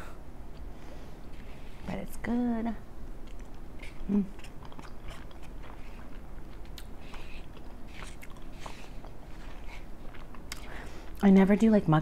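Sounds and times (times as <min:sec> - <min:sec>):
person chewing food: 0:03.2 - 0:11.2
person humming: 0:04.0 - 0:04.4.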